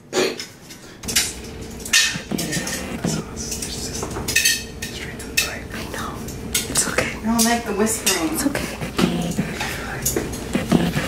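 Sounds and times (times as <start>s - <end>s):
metal tongs clinking on tray: 3.5s - 5.5s, 6.3s - 8.4s.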